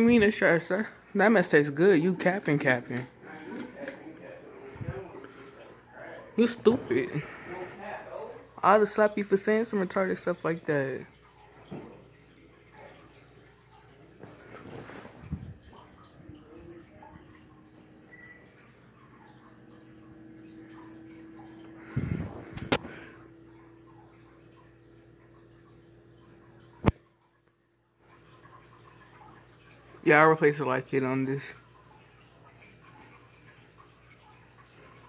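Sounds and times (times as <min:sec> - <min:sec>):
ceiling fan whooshing and humming: 0:04.6 - 0:05.2, 0:19.7 - 0:23.2.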